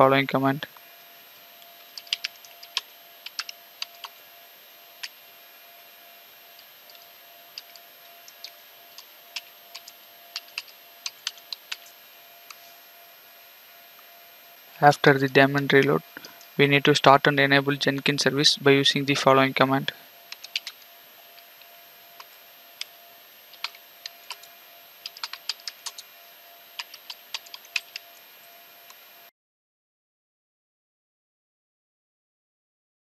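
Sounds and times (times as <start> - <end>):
computer keyboard typing: 1.8 - 4.2, 6.6 - 12.6, 20.3 - 20.8, 23.5 - 26.1, 26.8 - 28.2.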